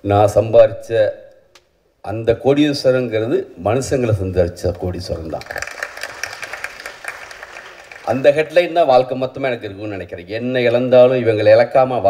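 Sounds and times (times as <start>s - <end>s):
audience applauding: 5.3s - 8.7s.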